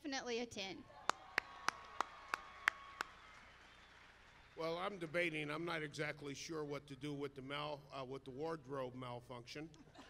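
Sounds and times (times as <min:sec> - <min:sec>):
person clapping hands: 0:01.0 - 0:04.0.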